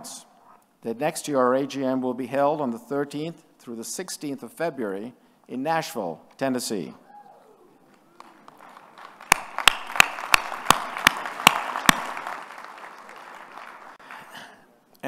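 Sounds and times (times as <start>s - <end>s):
loud close hand claps: 8.1s - 14.3s
audience applause: 8.1s - 14.4s.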